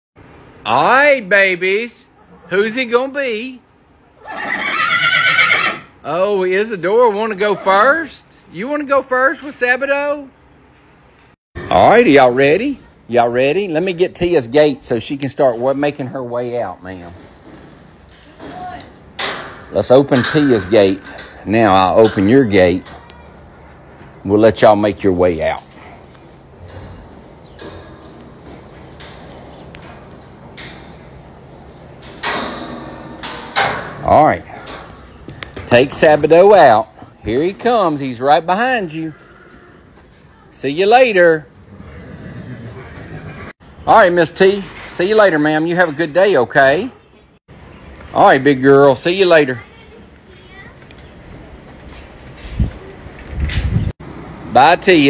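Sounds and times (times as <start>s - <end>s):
horse whinnying: 4.2s - 6.0s, 39.1s - 40.0s, 41.6s - 43.5s
metal stall gates rattling: 16.9s - 23.2s, 26.6s - 39.0s.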